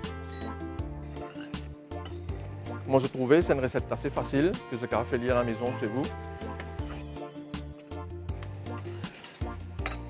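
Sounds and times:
background music with beat: 0.0 - 10.0
ladle scraping metal pan: 1.0 - 3.2, 6.1 - 7.9, 8.6 - 10.0.

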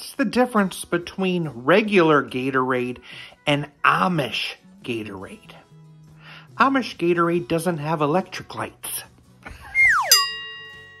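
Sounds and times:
descending whistle tone: 9.6 - 10.3
bell-like ding: 10.1 - 11.0.

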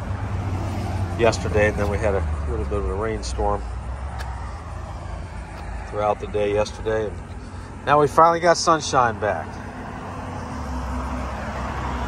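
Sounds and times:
low outdoor rumble: 0.0 - 10.7.

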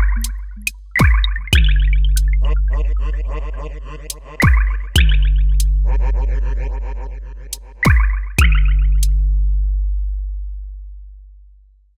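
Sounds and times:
deep sub-bass synthesizer note: 0.0 - 3.1.

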